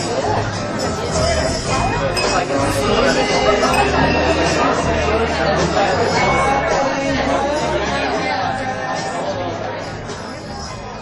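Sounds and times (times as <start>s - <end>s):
overlapping voices chatting: 0.0s - 11.0s.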